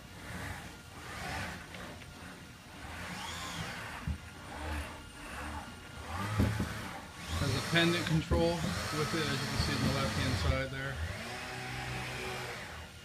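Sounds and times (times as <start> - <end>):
robot arm servos whirring: 0.2 - 12.9.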